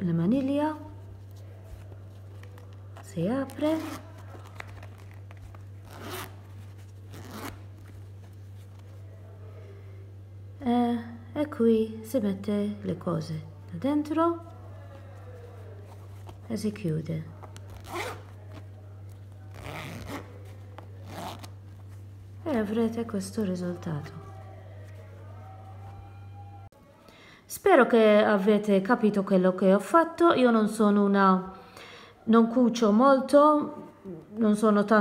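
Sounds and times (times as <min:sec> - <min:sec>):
zipper being pulled open: 0:03.4 - 0:08.1, 0:17.4 - 0:18.7, 0:19.4 - 0:21.9.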